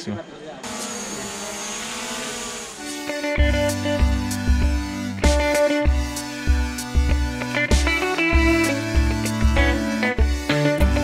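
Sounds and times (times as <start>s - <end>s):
drone propellers whining: 0.6s - 3.4s.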